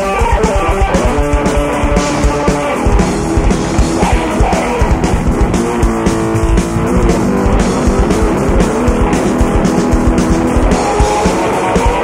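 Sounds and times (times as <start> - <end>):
distorted bass guitar solo: 0.0 - 12.0
pounding drums: 0.0 - 12.0.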